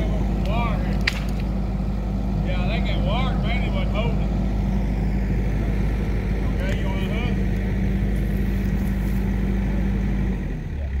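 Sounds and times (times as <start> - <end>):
diesel engine running: 0.0 - 11.0.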